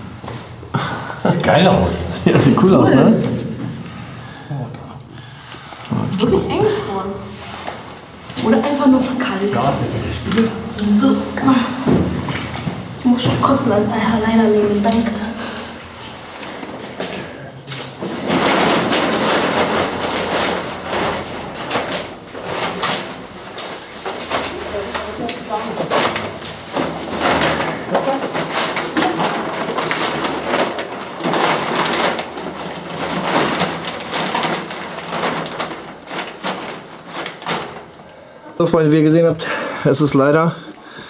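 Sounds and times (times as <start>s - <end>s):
clothing and plastic sheet rustling: 0.0s - 41.0s.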